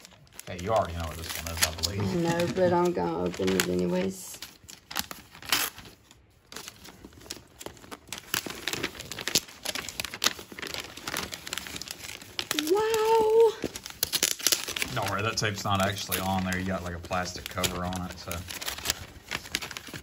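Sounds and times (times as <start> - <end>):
wrapping paper crinkling and tearing: 0.0 - 20.0.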